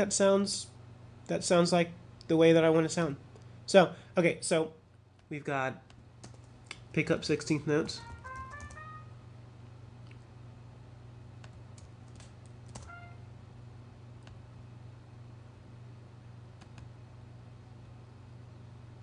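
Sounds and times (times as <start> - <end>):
steady low hum: 0.0 - 19.0
short synthesized note: 8.0 - 9.2, 12.8 - 13.3.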